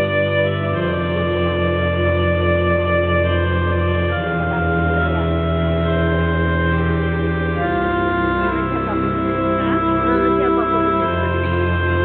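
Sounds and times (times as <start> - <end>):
organ-like held chords: 0.0 - 12.0.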